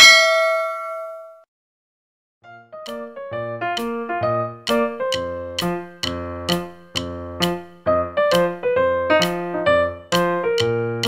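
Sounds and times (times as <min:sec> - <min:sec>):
notification bell ding: 0:00.0 - 0:01.4.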